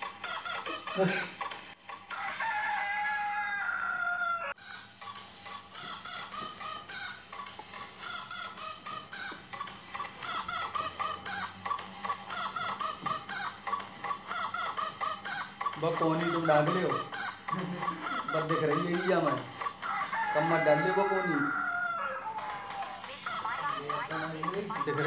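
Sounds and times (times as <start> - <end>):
faint music: 0.0 - 25.0
rooster crowing: 1.9 - 25.0
short clucking calls: 4.7 - 20.2.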